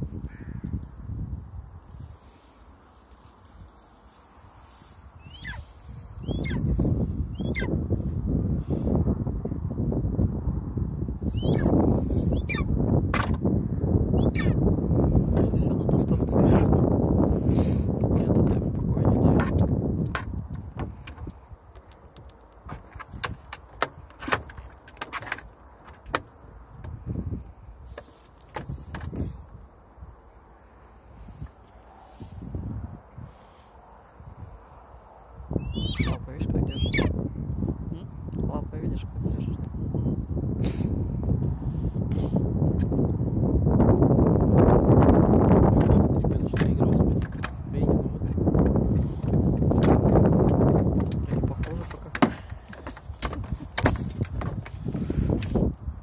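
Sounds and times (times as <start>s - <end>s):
steady low rumble: 0.0s - 24.7s
wind on microphone: 0.0s - 56.0s
eagle beak clicking and knocking: 18.2s - 27.0s.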